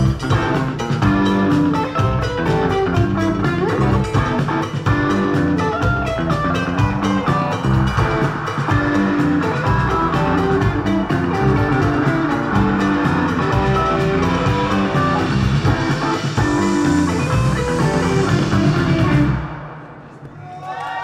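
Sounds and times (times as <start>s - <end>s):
indie rock band playing: 0.0s - 20.0s.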